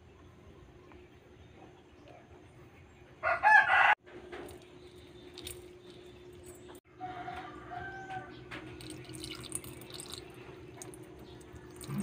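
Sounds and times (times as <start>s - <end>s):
rooster crowing: 3.2s - 4.0s, 6.9s - 8.4s.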